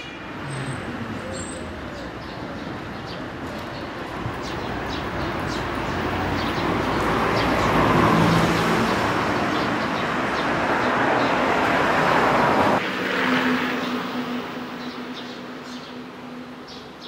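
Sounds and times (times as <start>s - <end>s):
motor vehicle passing close by: 6.1s - 14.1s.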